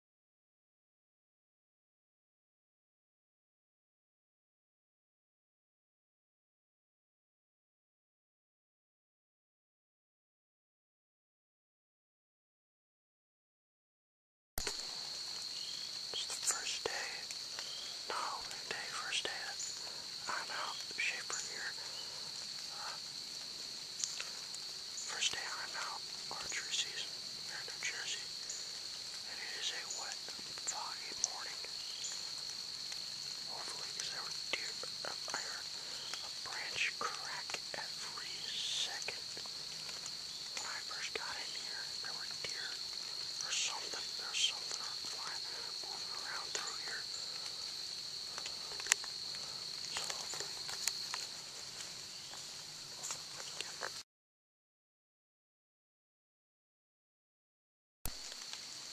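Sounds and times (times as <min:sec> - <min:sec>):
crickets trilling: 0:14.6 - 0:54.0, 0:58.1 - 0:58.9
person whispering: 0:16.1 - 0:23.1, 0:25.0 - 0:31.9, 0:33.4 - 0:39.5, 0:40.5 - 0:50.7, 0:53.0 - 0:54.0.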